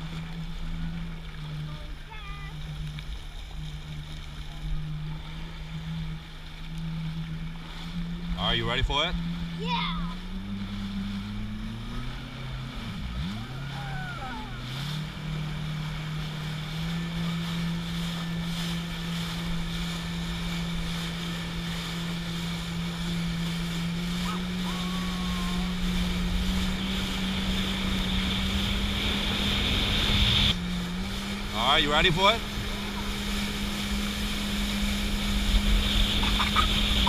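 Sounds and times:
jet ski engine running: 0:00.0 - 0:37.0
wind: 0:00.0 - 0:37.0
water spray rushing: 0:12.2 - 0:37.0.

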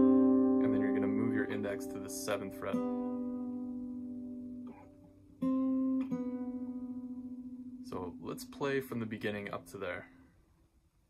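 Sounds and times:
acoustic guitar plucked chords: 0:00.0 - 0:10.1.

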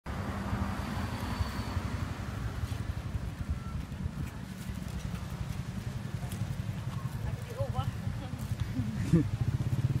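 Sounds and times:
vehicle engine rumble: 0:00.1 - 0:10.0
voices: 0:03.4 - 0:09.9
person laughing: 0:08.7 - 0:09.4.

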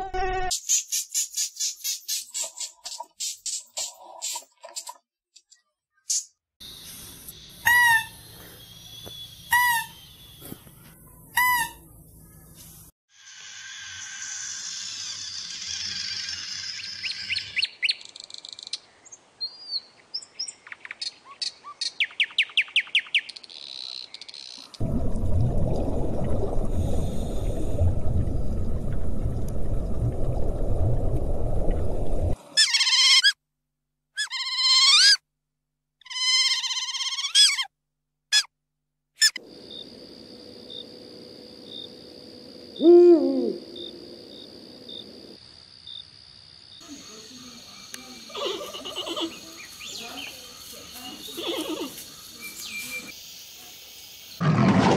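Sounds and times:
low rumbling noise: 0:24.8 - 0:32.4
owl hooting: 0:42.8 - 0:44.0.

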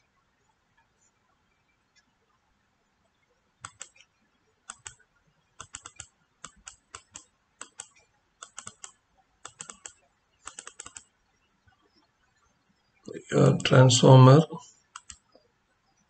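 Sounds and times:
computer mouse clicks: 0:03.6 - 0:05.0, 0:05.6 - 0:11.1, 0:14.9 - 0:15.4.

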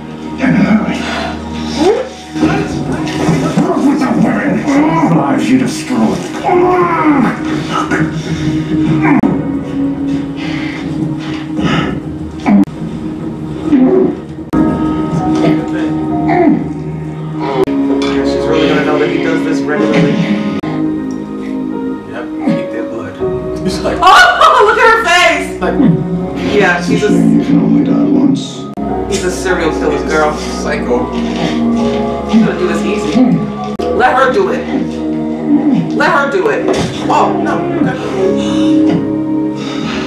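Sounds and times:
background score with held tones: 0:00.0 - 0:40.0
tense background music: 0:00.0 - 0:40.0.

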